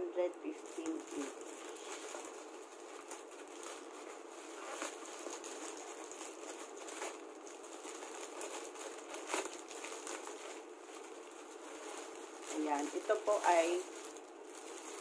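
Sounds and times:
plastic pouch crinkling and tearing: 0.5 - 15.0.

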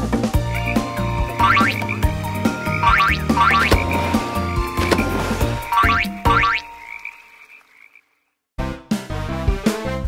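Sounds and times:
frog croak sound effects: 0.5 - 3.8, 5.7 - 8.4.

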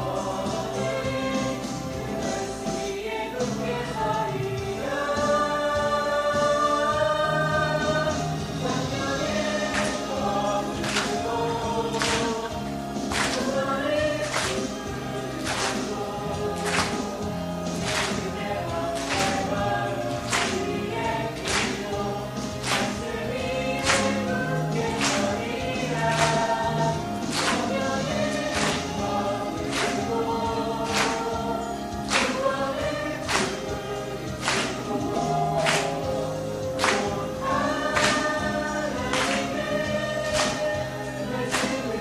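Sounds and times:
band accompaniment: 0.0 - 42.0
group singing a hymn: 0.0 - 42.0.

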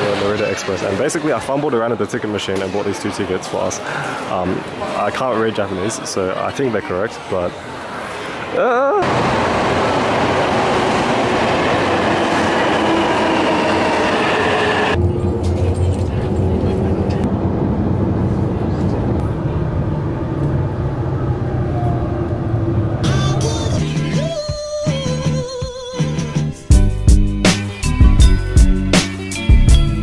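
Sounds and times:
deep rumble of train running: 9.1 - 24.4.

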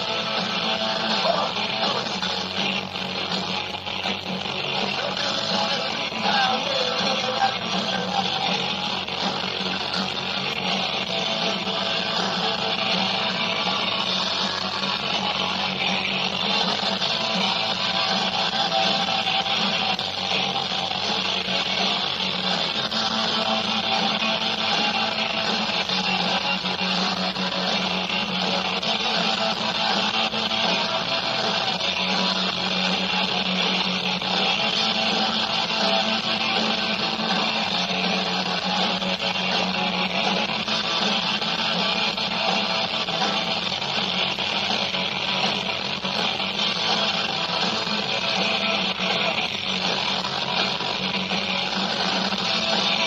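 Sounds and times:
live rock band playing: 0.0 - 53.0.

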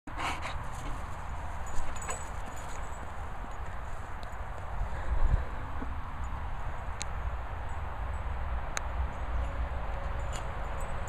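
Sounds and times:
dog panting: 0.1 - 1.2
wind rumble on microphone: 0.7 - 11.0.

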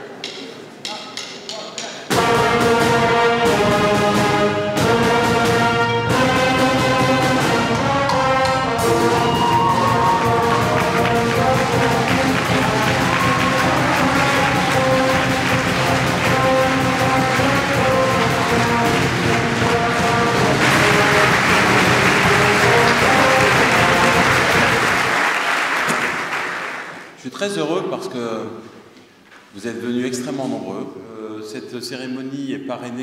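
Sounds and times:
brass band playing: 2.1 - 27.0
audience applause: 6.6 - 27.1.

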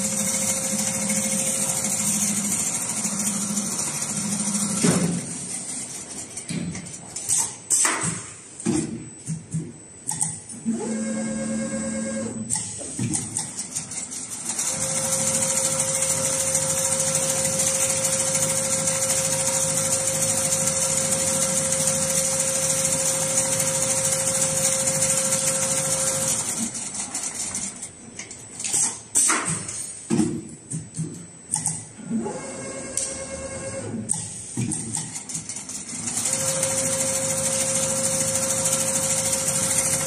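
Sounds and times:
sewing machine whining: 0.0 - 5.9, 10.7 - 12.4, 13.7 - 27.8, 35.5 - 40.0.

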